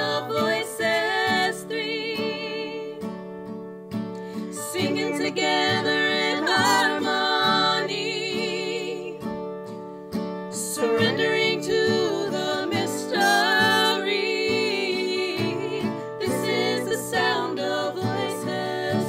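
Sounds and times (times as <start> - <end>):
women singing in harmony: 0.0 - 3.2, 4.5 - 9.4, 10.5 - 19.0
acoustic guitar: 0.0 - 19.0.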